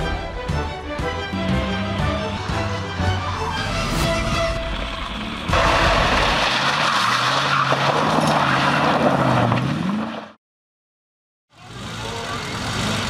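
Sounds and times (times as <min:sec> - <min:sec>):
tyre and road noise: 0:01.3 - 0:10.4
car engine running under load: 0:11.6 - 0:13.0.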